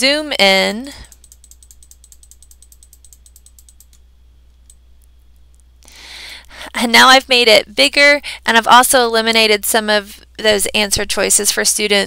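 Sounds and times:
computer mouse clicking: 0.9 - 5.7.

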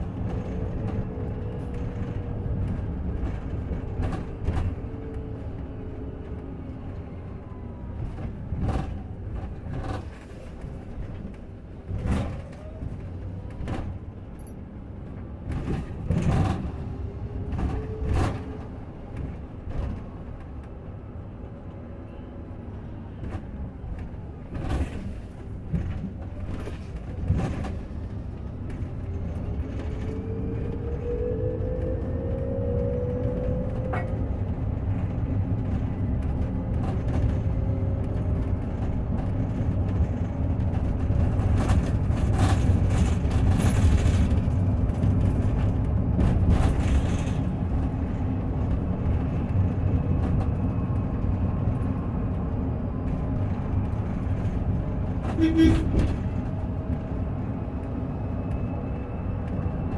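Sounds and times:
road and tyre rumble: 0.0 - 59.9.

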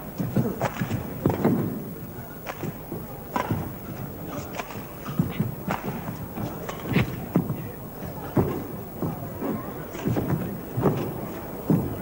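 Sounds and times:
hall background noise: 0.0 - 12.0
footsteps thudding on court: 2.5 - 12.0.

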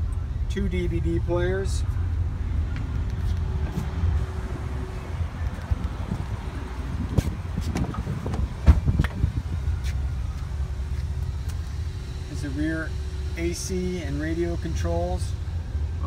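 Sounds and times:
low steady rumble: 0.0 - 16.0
car door clunk: 7.2 - 9.4.

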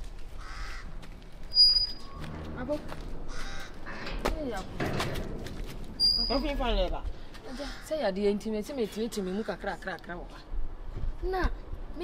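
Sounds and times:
crow cawing: 0.3 - 1.0, 3.2 - 4.3, 7.4 - 8.1.

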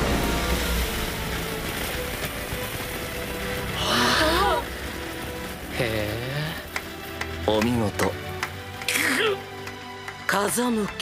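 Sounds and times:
audience clapping: 4.6 - 11.0.

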